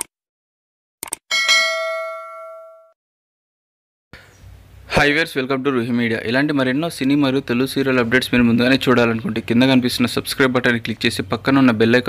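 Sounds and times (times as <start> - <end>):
bell ding: 1.3 - 3.0.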